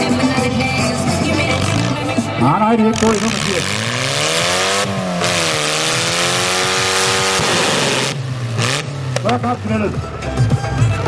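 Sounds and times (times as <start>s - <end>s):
car engine revving high: 1.0s - 10.0s.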